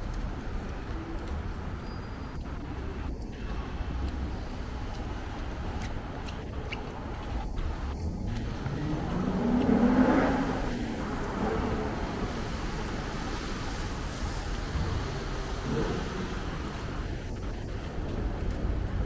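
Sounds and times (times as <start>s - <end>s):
city traffic hum: 0.0s - 19.0s
vehicle passing by: 8.0s - 14.4s.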